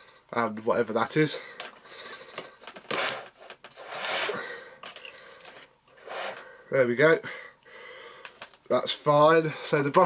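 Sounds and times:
plastic clicks and scraping: 0:01.6 - 0:05.7, 0:08.2 - 0:08.6.

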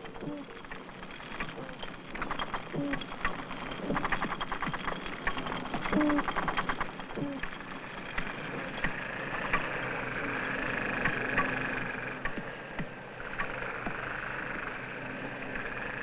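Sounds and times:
rapid underwater clicks: 0:00.0 - 0:16.0.

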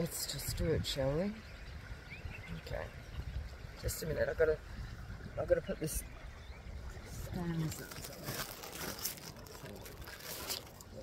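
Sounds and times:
dry grass crackling and rustling: 0:07.3 - 0:11.0.

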